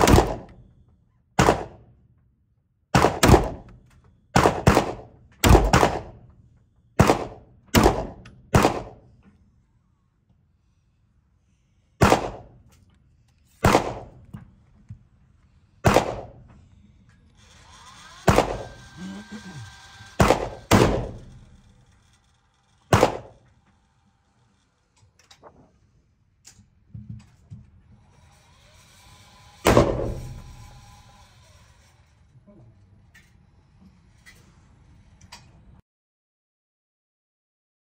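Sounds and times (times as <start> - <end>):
gunshots echoing indoors: 0.0 - 0.5, 1.4 - 1.8, 3.0 - 3.7, 4.4 - 6.2, 7.0 - 9.0, 12.0 - 12.5, 13.6 - 14.2, 15.8 - 16.4, 18.3 - 18.6, 20.2 - 21.2, 22.9 - 23.4
electric target carrier whine: 16.1 - 25.2, 27.7 - 35.3.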